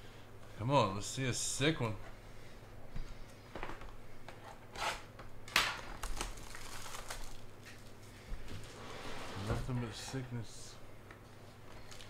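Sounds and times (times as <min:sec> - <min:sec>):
card pack wrapper crinkling: 0:05.9 - 0:07.8, 0:11.7 - 0:12.0.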